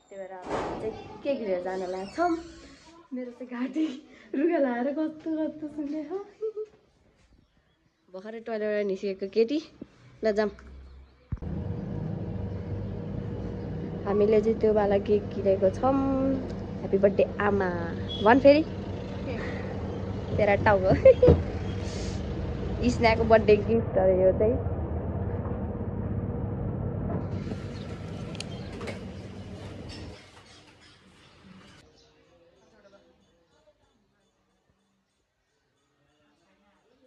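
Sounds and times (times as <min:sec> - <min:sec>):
steady background rumble: 0:11.4 - 0:29.9.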